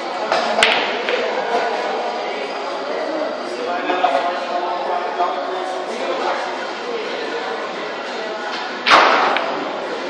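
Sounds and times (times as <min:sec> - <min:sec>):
pool cue striking ball: 0:00.4 - 0:01.4, 0:08.8 - 0:09.6
pool balls colliding click: 0:00.6 - 0:01.3.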